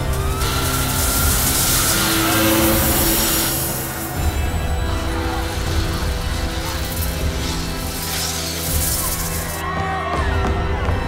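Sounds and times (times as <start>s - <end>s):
loud rushing roar: 0.0s - 9.6s
low rumble: 0.0s - 9.6s
held music tones: 0.0s - 9.7s.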